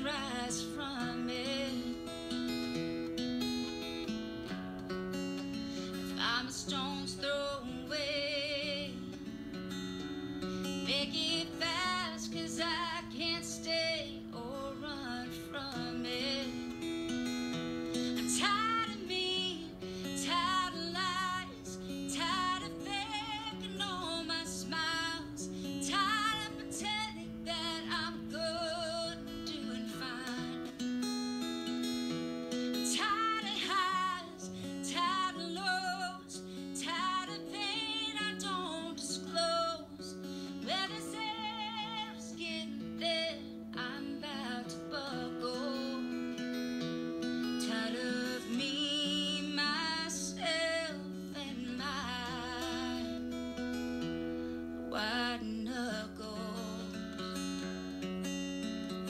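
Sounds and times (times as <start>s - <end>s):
woman singing with vibrato: 0.0s - 2.5s, 5.8s - 9.2s, 10.6s - 17.2s, 17.9s - 30.8s, 32.7s - 46.4s, 47.4s - 53.6s, 54.9s - 57.5s
acoustic guitar: 0.0s - 59.0s.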